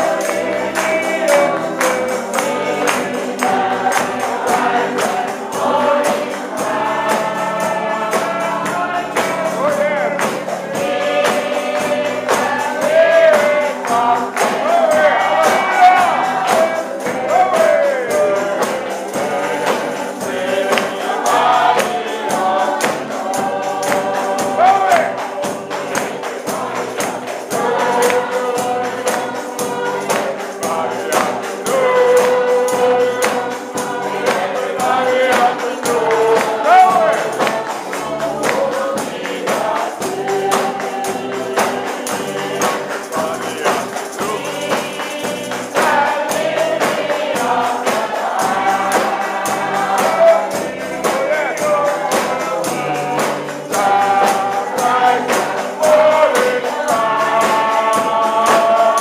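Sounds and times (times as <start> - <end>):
group singing gospel song: 0.0 - 59.0
man leading singing: 0.0 - 59.0
steady percussive beat: 0.0 - 59.0.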